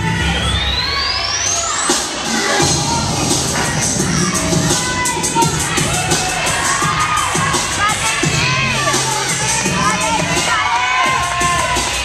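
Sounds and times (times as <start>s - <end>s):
spectators cheering and shouting: 0.0s - 12.0s
music with steady beat: 1.9s - 12.0s.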